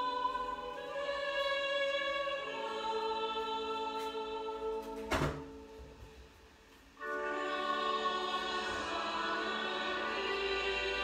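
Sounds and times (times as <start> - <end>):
choir holding long chords: 0.0 - 6.1, 7.0 - 11.0.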